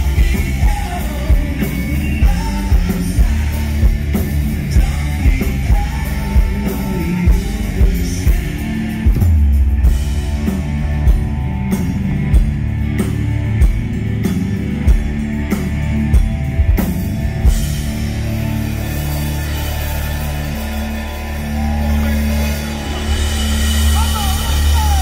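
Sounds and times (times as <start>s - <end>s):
drums beating: 0.0s - 25.0s
live rock band playing: 0.0s - 25.0s.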